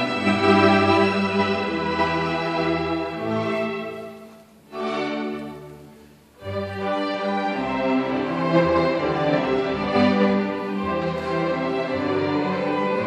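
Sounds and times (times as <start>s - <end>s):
string orchestra bowed chords: 0.0s - 13.0s.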